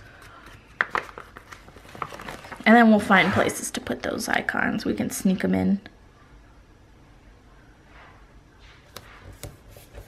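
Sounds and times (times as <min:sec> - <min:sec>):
paper rustling: 0:00.0 - 0:03.4.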